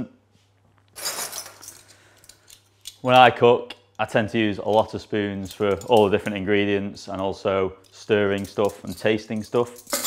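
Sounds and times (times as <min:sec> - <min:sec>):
metal utensils clattering: 0:01.0 - 0:01.9, 0:08.3 - 0:10.0.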